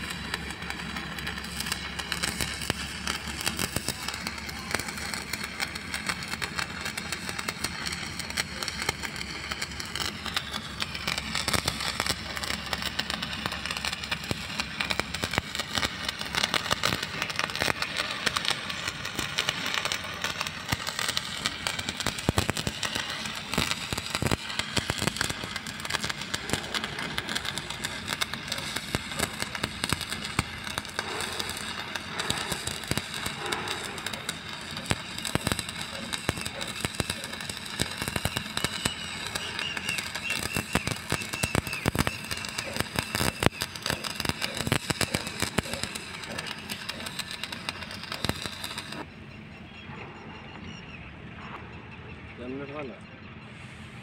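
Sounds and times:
welding arc crackling and popping: 0.0s - 49.1s.

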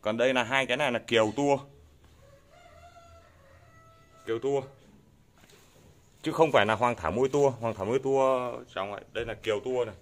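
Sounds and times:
faint rooster crow: 2.1s - 4.8s.

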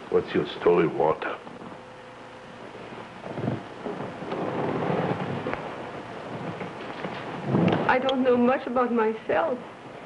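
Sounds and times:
old film soundtrack rumble and hiss: 0.0s - 10.0s.

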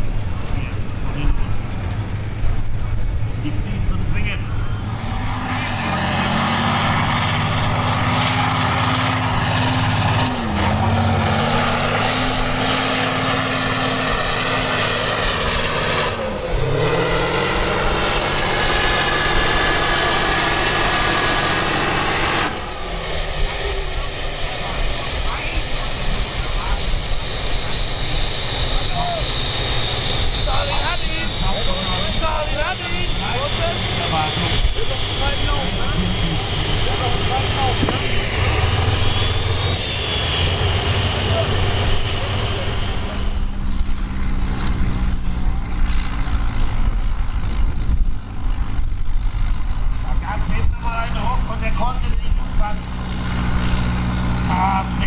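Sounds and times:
second tractor engine running: 0.0s - 55.0s
tractor diesel engine: 0.0s - 55.0s
turbocharger whine: 0.0s - 55.0s
voices: 2.7s - 4.9s, 23.4s - 29.4s, 30.2s - 38.6s, 41.0s - 43.3s.

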